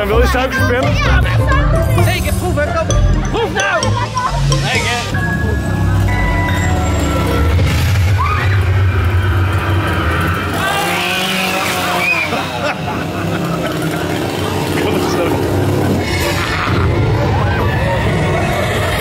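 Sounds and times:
music: 0:00.0 - 0:09.2, 0:15.7 - 0:19.0
raised voices: 0:00.0 - 0:19.0
chainsaw engine running: 0:08.6 - 0:16.4.

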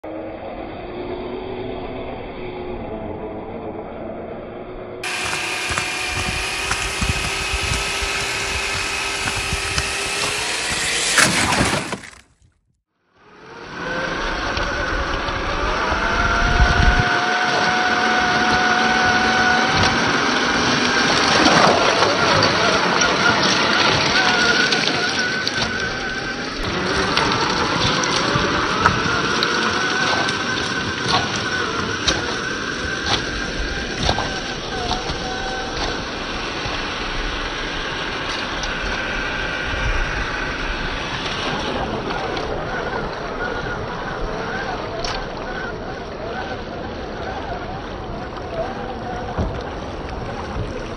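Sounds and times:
electric motor and gearbox whine: 0:04.6 - 0:12.6, 0:13.2 - 0:50.9
sharp clicks: 0:05.0 - 0:12.4
water sloshing and splashing: 0:17.0 - 0:50.9.

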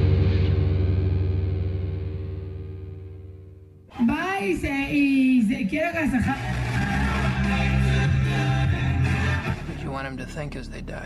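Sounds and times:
distorted electric guitar chord: 0:00.0 - 0:03.8.

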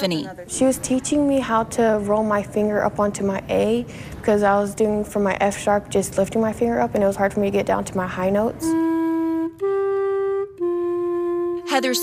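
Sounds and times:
clarinet slow held notes: 0:08.6 - 0:12.0.

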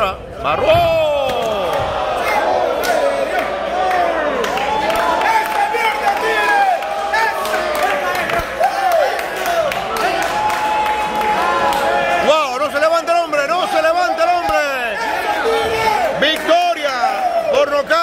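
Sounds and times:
crowd cheering and yelling: 0:00.0 - 0:18.0.

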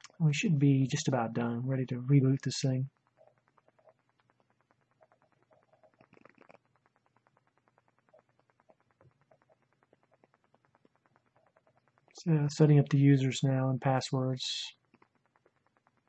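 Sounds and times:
faint rapid ticking: 0:00.0 - 0:16.0.

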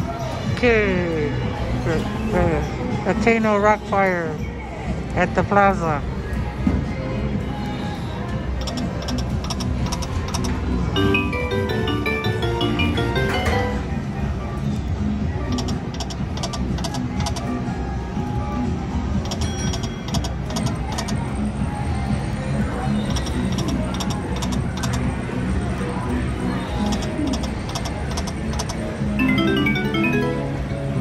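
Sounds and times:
rising chime notes: 0:11.0 - 0:13.8, 0:29.2 - 0:30.8.

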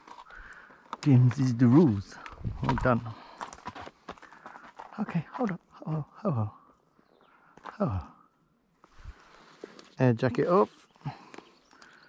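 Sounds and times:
horse hooves clip-clopping: 0:01.0 - 0:05.6.

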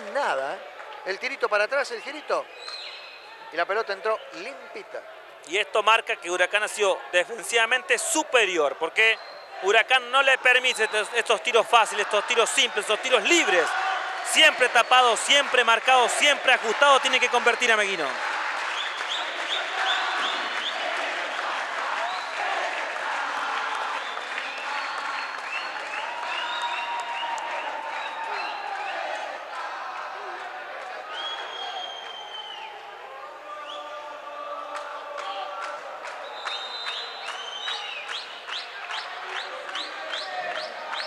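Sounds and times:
crowd talking and shouting: 0:00.0 - 0:41.0
crowd applause: 0:06.3 - 0:41.0.

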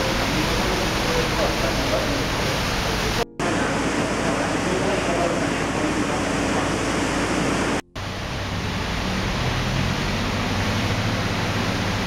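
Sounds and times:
faint voices: 0:00.0 - 0:07.8.

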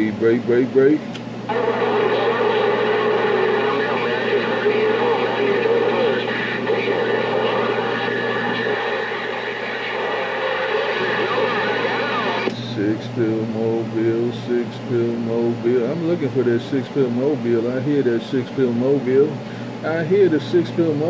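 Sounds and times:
steady hum: 0:00.0 - 0:21.0
garbled overlapping radio voices: 0:01.5 - 0:21.0
radio static: 0:01.5 - 0:21.0.

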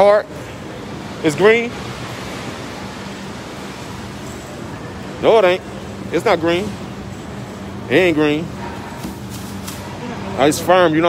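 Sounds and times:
indoor market hall hiss: 0:00.0 - 0:11.0.

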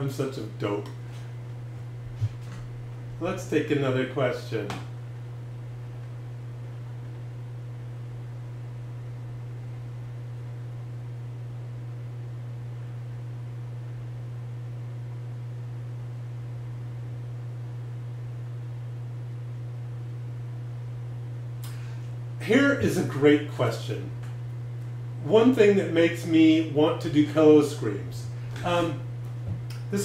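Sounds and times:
low hum: 0:00.0 - 0:30.0.

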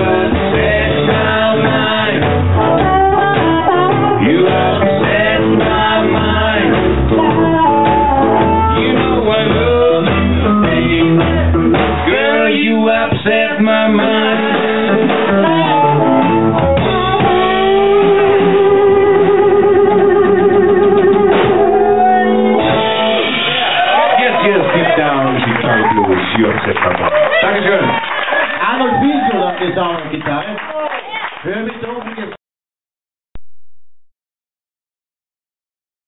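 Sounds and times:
upright bass notes: 0:00.0 - 0:26.3
live blues band playing: 0:00.0 - 0:26.4.

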